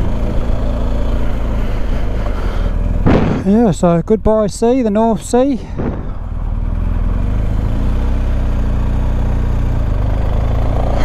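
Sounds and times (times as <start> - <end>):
motorcycle engine running: 0.0 - 11.0
road and wind noise: 0.0 - 11.0.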